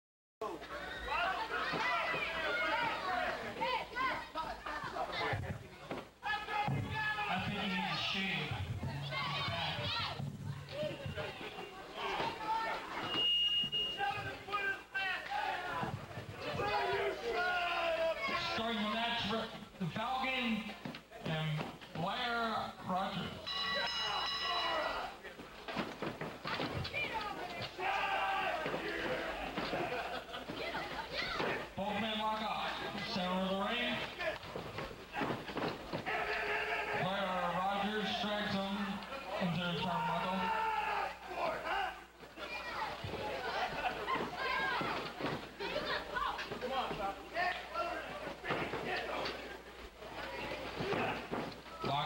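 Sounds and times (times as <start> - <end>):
crowd shouting and talking: 0.4 - 21.8, 23.3 - 33.3, 33.9 - 52.0
spectators shouting: 27.2 - 30.1, 36.0 - 37.0, 39.9 - 42.1.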